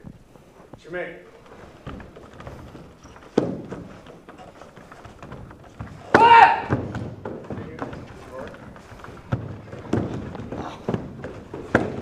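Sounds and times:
bare feet stepping on wooden floor: 0.0s - 12.0s.

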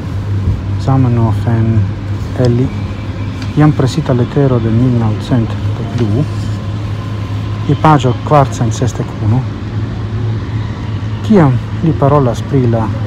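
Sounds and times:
vehicle humming: 0.0s - 13.0s
man talking: 0.8s - 2.8s, 3.5s - 6.6s, 7.6s - 9.5s, 11.2s - 13.0s.

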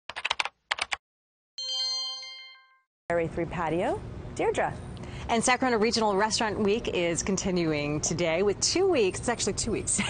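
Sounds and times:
bright bell-like chime: 1.6s - 2.9s.

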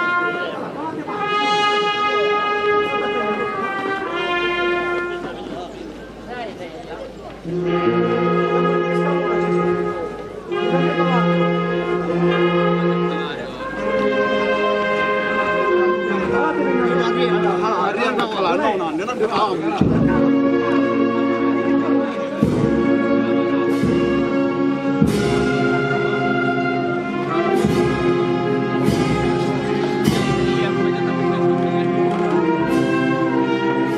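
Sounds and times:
brass band playing chords: 0.0s - 6.5s, 7.3s - 33.9s
crowd voices: 0.0s - 33.9s
sharp percussion strokes: 27.3s - 31.4s.

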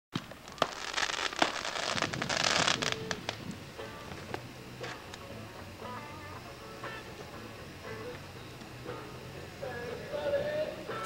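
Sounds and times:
fireworks popping and crackling: 0.1s - 5.8s.

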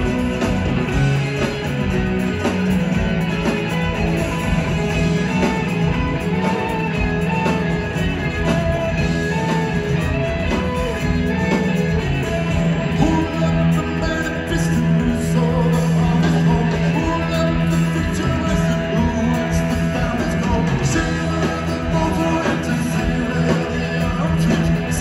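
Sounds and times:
live rock band playing: 0.0s - 25.0s.

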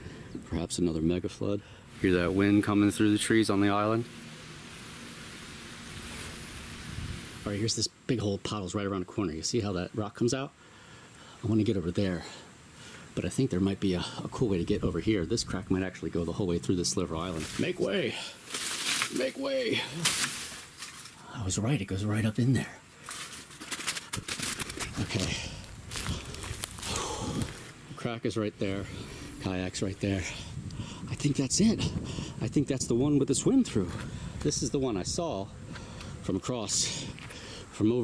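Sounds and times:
wind through trees: 0.0s - 38.0s
footsteps and scrapes on rock: 17.2s - 19.3s, 20.0s - 21.2s, 23.0s - 27.8s.

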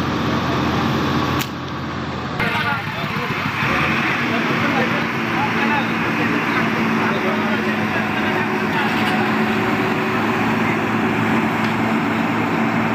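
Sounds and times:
motorcycle engines running: 0.0s - 12.9s
people talking: 2.4s - 11.3s.

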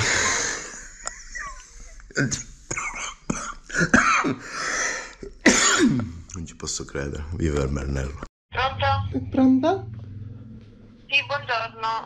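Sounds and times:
man speaking: 2.2s - 3.4s, 6.0s - 8.3s
man coughing: 2.2s - 4.6s, 5.2s - 6.2s.

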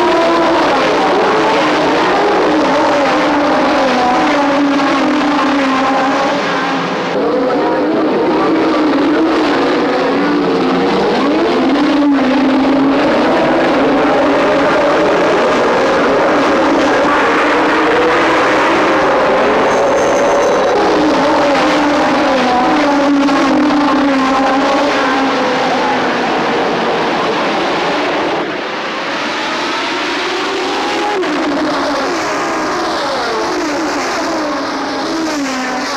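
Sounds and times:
racing car engines at high revs: 0.0s - 35.9s.

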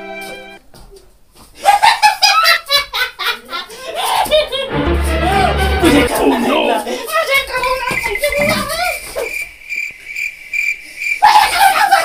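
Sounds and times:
cricket chirping: 7.5s - 12.0s.

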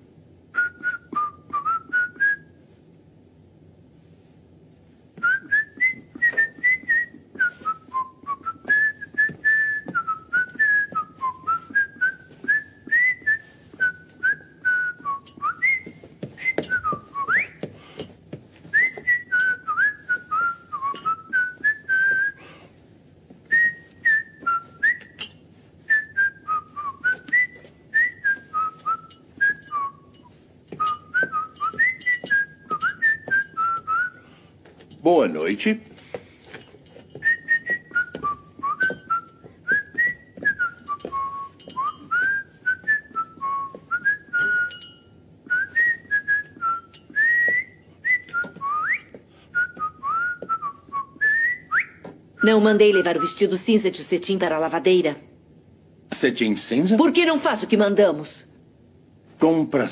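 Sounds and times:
man whistling a tune: 0.5s - 2.6s, 5.2s - 17.6s, 18.7s - 22.5s, 23.5s - 25.3s, 25.9s - 34.2s, 37.2s - 52.0s.

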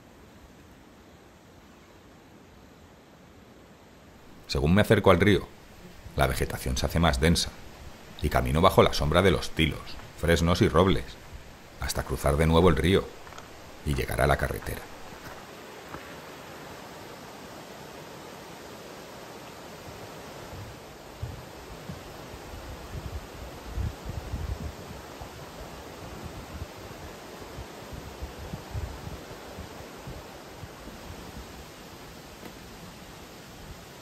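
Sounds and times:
river rushing over rocks: 4.2s - 24.1s
footsteps on wooden planks: 13.1s - 13.8s, 14.5s - 16.2s, 19.9s - 22.3s.

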